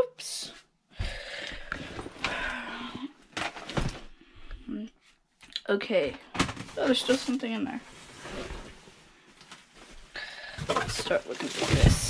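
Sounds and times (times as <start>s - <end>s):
cardboard boxes being moved: 3.4s - 4.1s, 9.7s - 12.0s
fabric bag rustling: 6.6s - 10.2s.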